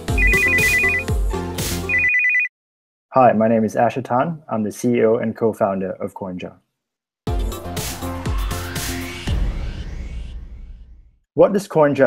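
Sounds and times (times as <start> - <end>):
electronic music with bass beat: 0.0 - 2.0, 7.3 - 9.6
warbling telephone ringtone: 0.1 - 1.0, 1.9 - 2.5.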